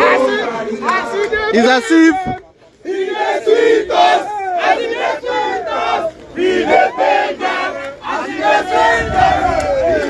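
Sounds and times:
crowd chanting and shouting: 0:00.0 - 0:10.0.

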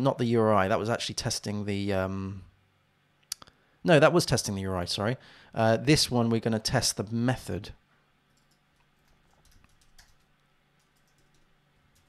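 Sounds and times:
faint computer keyboard typing: 0:08.3 - 0:12.0.

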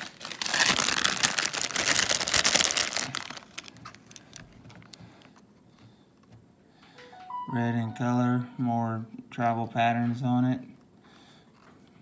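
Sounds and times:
plastic packet crinkling: 0:00.0 - 0:05.0.

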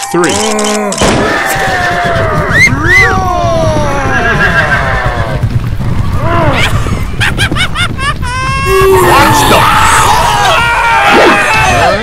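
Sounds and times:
low rumble: 0:01.0 - 0:12.0.

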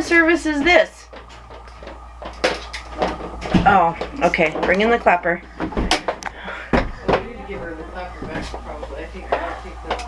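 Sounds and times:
faint babble and voices: 0:03.6 - 0:10.0.

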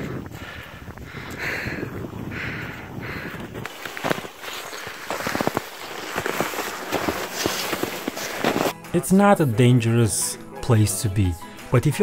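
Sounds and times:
boots crunching through snow: 0:03.6 - 0:08.8.

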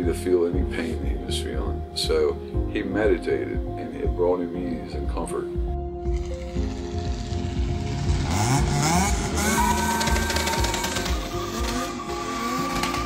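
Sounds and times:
background music: 0:00.0 - 0:13.0
car engine revving: 0:06.0 - 0:13.0.

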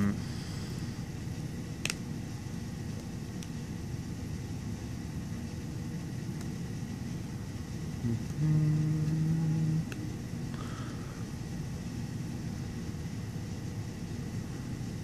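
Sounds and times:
low background rumble: 0:00.0 - 0:15.0.

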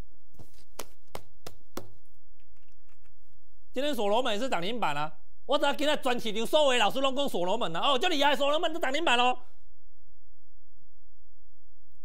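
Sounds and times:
paper tapping and rustling: 0:00.4 - 0:03.0.

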